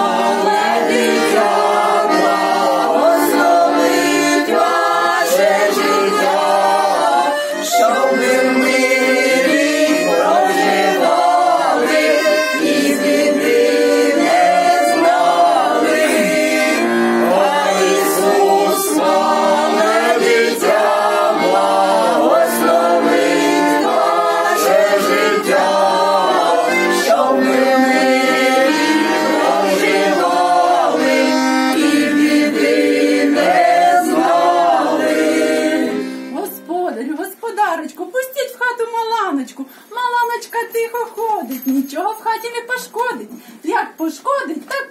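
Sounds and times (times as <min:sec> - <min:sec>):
group singing folk song: 0:00.0 - 0:36.8
button accordion: 0:00.0 - 0:37.1.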